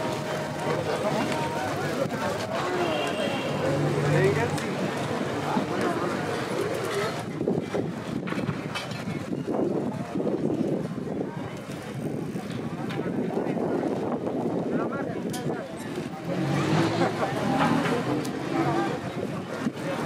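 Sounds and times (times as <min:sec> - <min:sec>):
passers-by talking: 0:00.0 - 0:20.0
traffic: 0:00.0 - 0:20.0.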